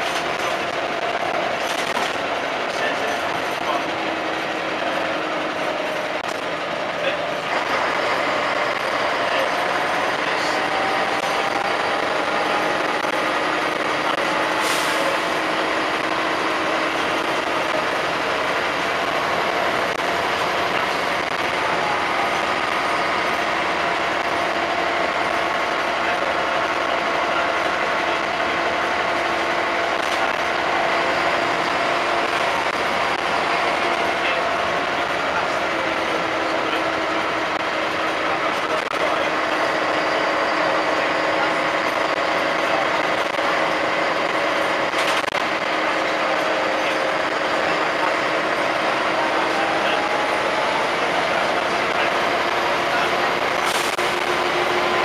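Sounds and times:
bus body rattling: 0.0s - 55.0s
bus engine drone: 0.0s - 55.0s.

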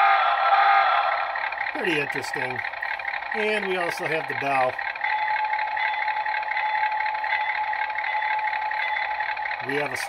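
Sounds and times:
locomotive engine idling: 0.0s - 10.0s
locomotive bell ringing: 1.3s - 10.0s.

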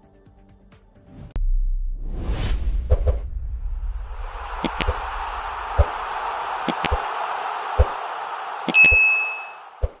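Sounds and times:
notification bell ding: 8.8s - 9.6s.

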